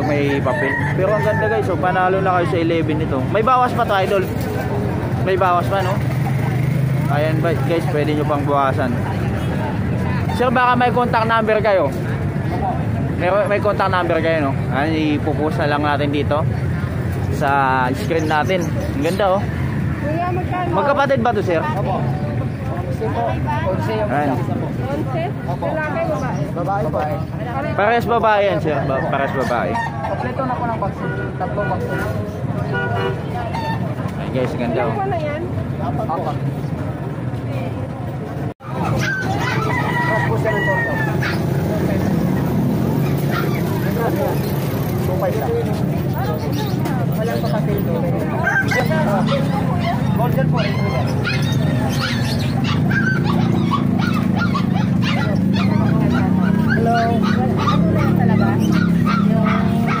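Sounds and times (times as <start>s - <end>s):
passing traffic: 0.0s - 60.0s
people talking: 20.0s - 53.8s, 55.0s - 60.0s
fowl calling: 28.8s - 31.1s, 32.7s - 34.0s
vehicle horn toots: 31.0s - 33.8s.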